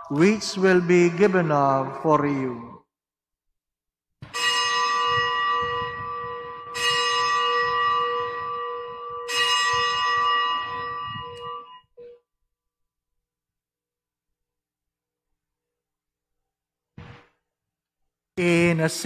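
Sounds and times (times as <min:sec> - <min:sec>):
bell ringing: 0:04.4 - 0:12.2.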